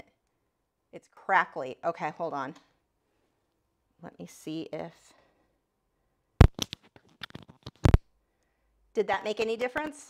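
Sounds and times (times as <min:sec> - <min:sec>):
microphone connection crackling: 0:06.4 - 0:08.1.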